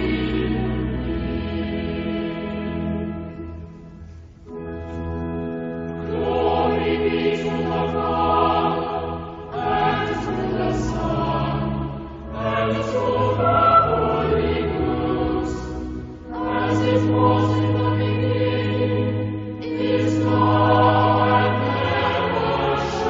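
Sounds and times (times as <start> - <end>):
choir singing sustained chords: 0.0 - 23.0.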